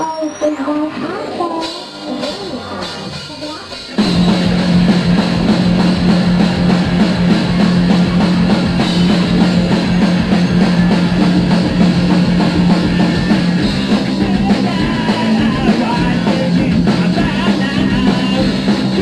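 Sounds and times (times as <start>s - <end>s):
electric guitars and bass: 0.7s - 19.0s
drum kit: 0.8s - 19.0s.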